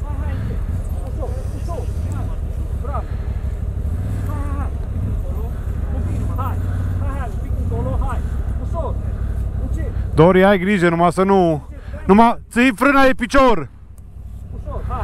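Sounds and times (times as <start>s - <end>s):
atv engine running at low revs: 0.0s - 15.0s
faint voices calling out: 0.0s - 15.0s.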